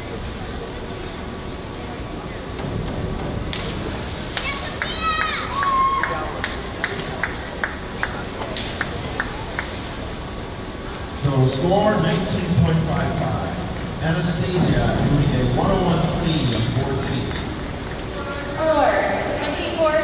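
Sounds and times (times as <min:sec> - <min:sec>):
distant voices: 0:00.0 - 0:20.0.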